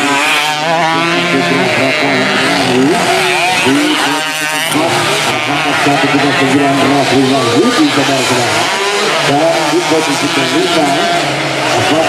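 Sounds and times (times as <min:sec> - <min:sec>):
motorcycle engines revving: 0:00.0 - 0:12.0
man talking: 0:00.9 - 0:12.0.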